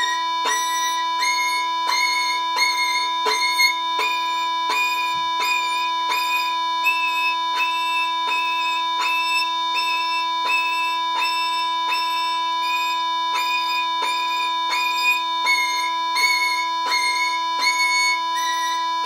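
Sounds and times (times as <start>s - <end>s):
violin playing scale: 0.0s - 19.0s.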